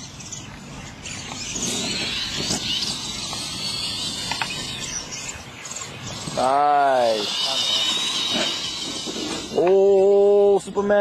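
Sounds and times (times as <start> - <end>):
toy truck motors whining: 1.0 - 10.7.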